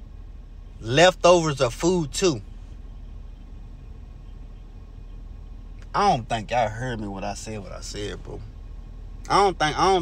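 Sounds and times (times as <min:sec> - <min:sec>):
car cabin low hum: 0:00.0 - 0:10.0.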